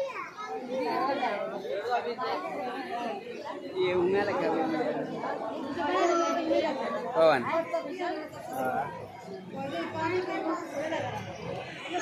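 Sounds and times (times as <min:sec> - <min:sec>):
children's voices: 0:00.0 - 0:03.8, 0:05.0 - 0:08.4, 0:09.1 - 0:12.0
chatter of several voices: 0:00.0 - 0:12.0.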